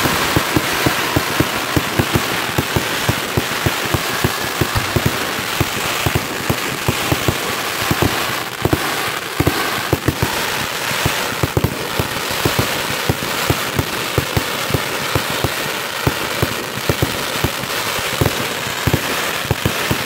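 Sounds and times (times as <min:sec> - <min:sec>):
fireworks bangs and pops: 0:00.0 - 0:20.0
fireworks crackling hiss: 0:00.0 - 0:20.0.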